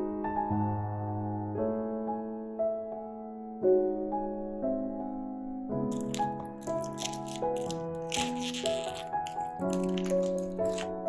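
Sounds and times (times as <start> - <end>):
soft piano music: 0.0 - 11.0
plastic shrink wrap crinkling: 5.9 - 11.0.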